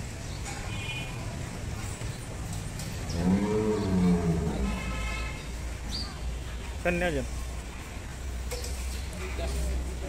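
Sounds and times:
bull mooing: 0:03.2 - 0:05.0.

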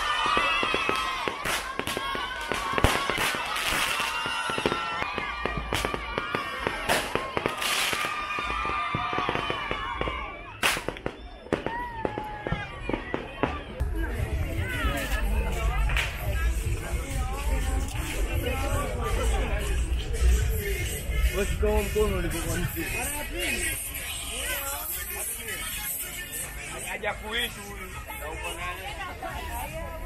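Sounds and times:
crowd shouting: 0:00.0 - 0:16.8
firecrackers banging and crackling: 0:00.0 - 0:18.2.

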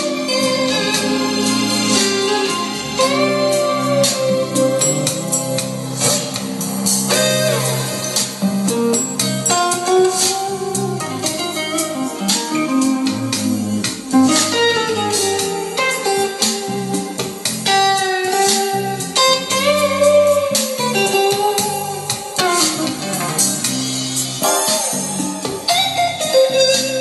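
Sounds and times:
guitar music through speaker: 0:00.0 - 0:27.0.

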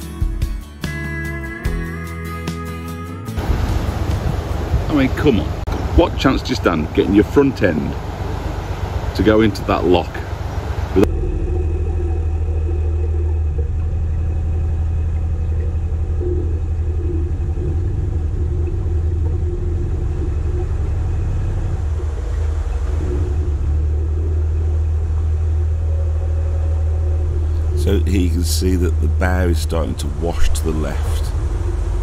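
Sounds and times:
boat engine rumbling: 0:03.2 - 0:32.0.

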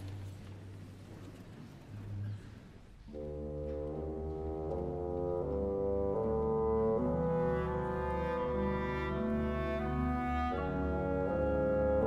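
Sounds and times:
orchestral brass chords: 0:03.1 - 0:12.0.

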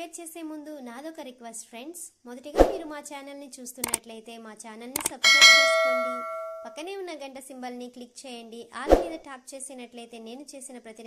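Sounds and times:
bright bell ding: 0:05.2 - 0:06.8.

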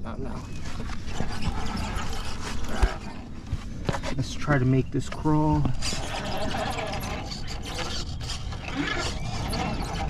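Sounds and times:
tires scraping on stone: 0:00.2 - 0:10.0.

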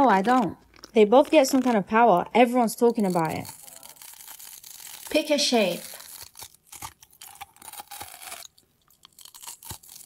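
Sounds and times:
crunching and chewing crisp bar: 0:00.0 - 0:02.0, 0:02.7 - 0:10.0.

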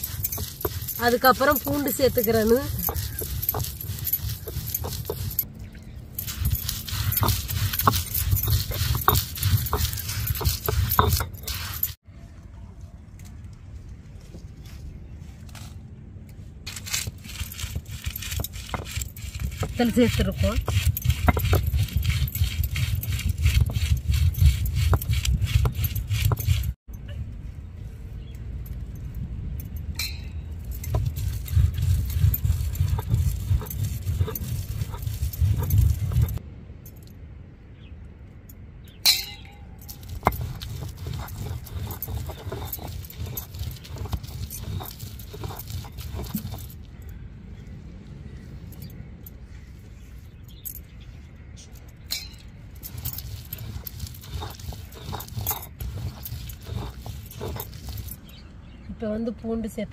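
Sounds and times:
stone roller grinding on stone: 0:00.0 - 0:05.5, 0:06.2 - 0:12.0, 0:16.7 - 0:26.8, 0:30.6 - 0:36.4, 0:39.8 - 0:46.8, 0:52.8 - 0:58.4
bangles clinking: 0:00.0 - 0:12.0, 0:16.7 - 0:26.8, 0:28.2 - 0:37.2, 0:38.5 - 0:46.9, 0:51.7 - 0:58.5.

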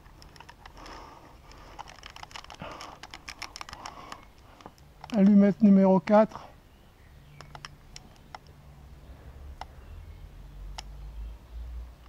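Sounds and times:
faint sharp clicks: 0:07.3 - 0:08.6, 0:10.7 - 0:11.0.

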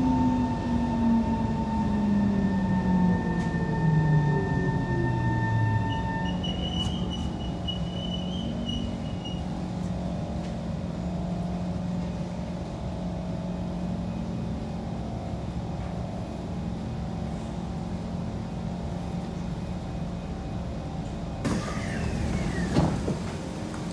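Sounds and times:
train interior drone: 0:00.0 - 0:23.9
doors opening hiss and clatter: 0:21.4 - 0:23.9.

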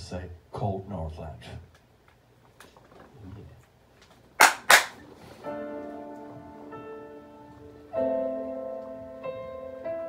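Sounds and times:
held keyboard chord: 0:05.4 - 0:10.0.

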